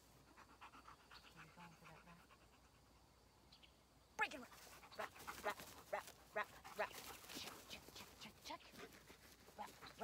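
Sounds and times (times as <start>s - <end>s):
dog panting: 0.0s - 3.1s, 4.5s - 10.0s.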